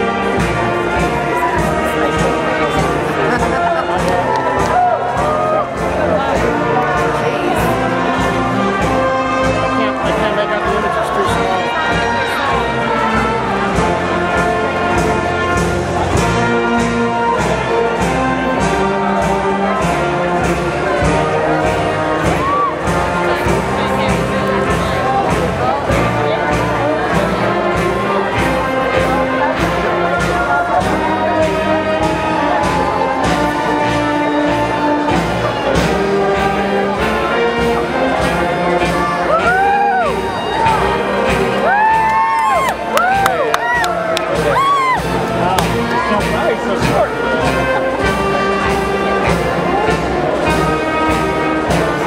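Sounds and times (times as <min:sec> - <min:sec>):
brass-led orchestral music: 0:00.0 - 0:52.0
crowd murmur: 0:00.0 - 0:52.0.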